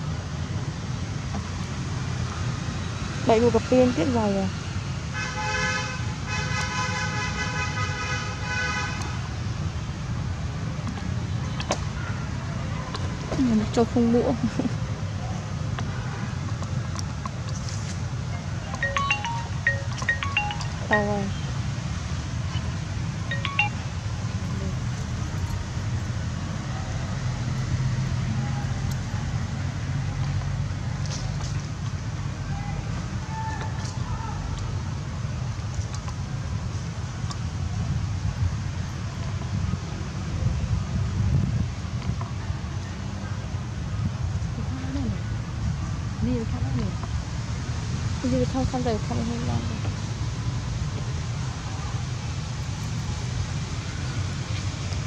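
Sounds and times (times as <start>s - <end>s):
low traffic rumble: 0.0s - 55.0s
short high chirps: 18.8s - 21.1s, 23.3s - 24.0s.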